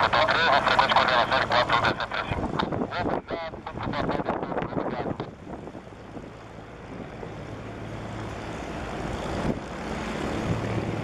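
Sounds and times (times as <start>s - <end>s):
helicopter rotor rumble: 0.0s - 11.0s.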